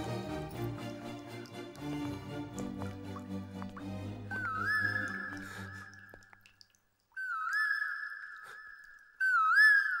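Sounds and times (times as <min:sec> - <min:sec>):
high clear whistle-like tone: 0:04.3 - 0:05.8, 0:07.2 - 0:10.0.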